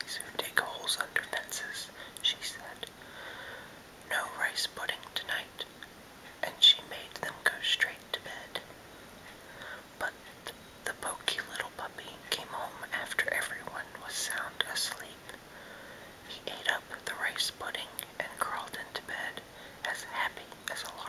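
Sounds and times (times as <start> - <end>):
man whispering: 0.0 - 2.9, 4.1 - 5.7, 6.4 - 8.7, 10.9 - 15.3, 16.3 - 21.0.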